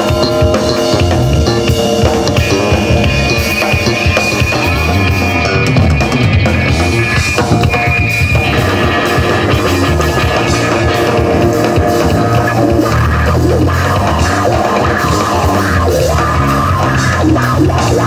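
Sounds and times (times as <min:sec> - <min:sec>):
bass guitar: 0:00.0 - 0:18.0
drum kit: 0:00.0 - 0:18.0
electric guitar: 0:00.0 - 0:18.0.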